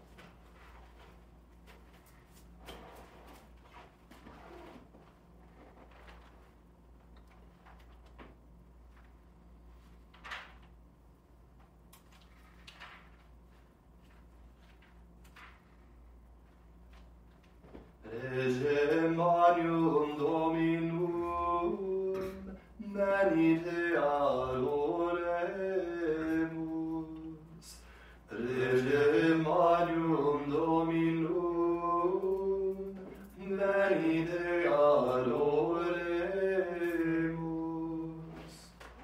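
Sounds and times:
man chanting: 18.0 - 38.8.

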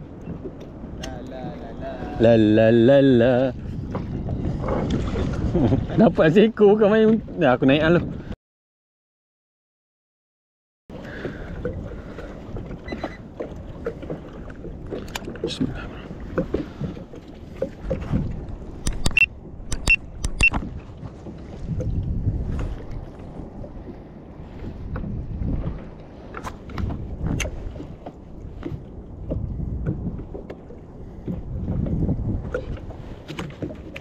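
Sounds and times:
water slapping against hull: 0.0 - 8.4, 10.9 - 34.0
sharp clicks and knocks: 18.8 - 20.7.

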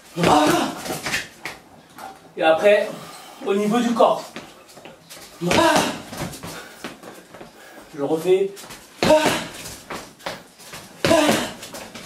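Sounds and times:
faint knocks and scuffs: 3.8 - 12.0.

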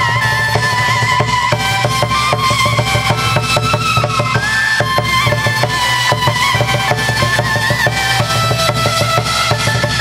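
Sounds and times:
held melody: 0.0 - 10.0
wooden clapper beat: 0.0 - 10.0.

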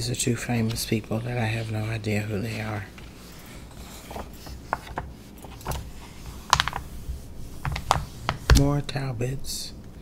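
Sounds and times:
fingernails tapping magazine pages: 4.0 - 5.9, 6.5 - 6.9, 7.6 - 8.8.

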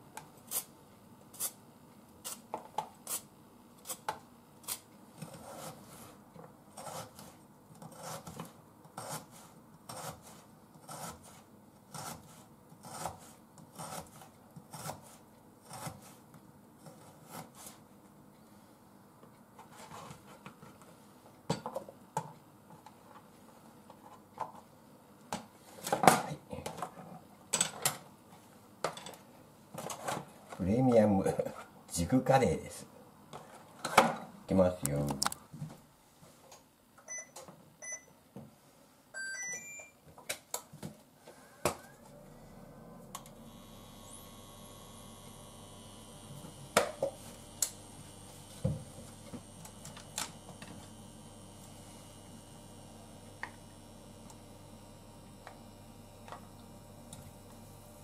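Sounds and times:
knife slicing carrot on board: 6.8 - 16.2.

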